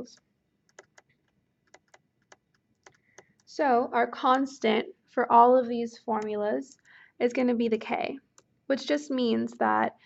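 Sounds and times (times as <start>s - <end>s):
stylus tapping on tablet screen: 0.1s - 3.5s.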